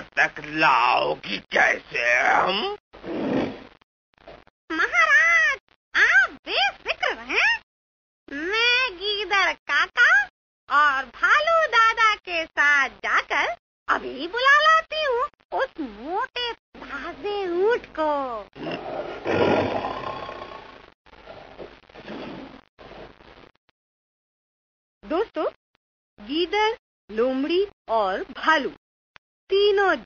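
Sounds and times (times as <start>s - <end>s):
lion roaring: 18.6s - 20.8s.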